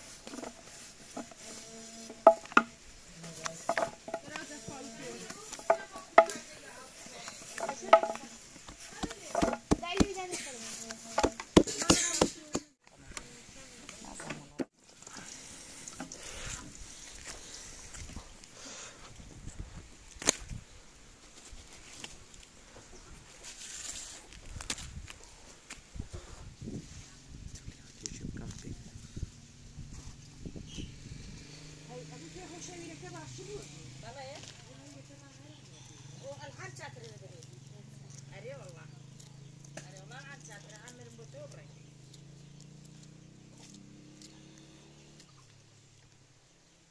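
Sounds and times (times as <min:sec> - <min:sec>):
knocks on wooden board: 0:02.2 - 0:02.7, 0:07.6 - 0:10.2, 0:11.2 - 0:12.7.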